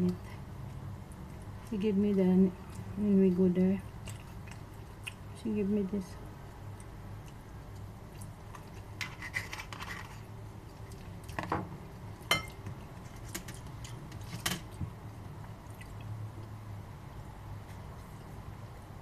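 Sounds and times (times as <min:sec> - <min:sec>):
low steady hum: 0:00.0 - 0:19.0
chewing: 0:00.1 - 0:05.4, 0:06.4 - 0:11.5, 0:15.4 - 0:16.6.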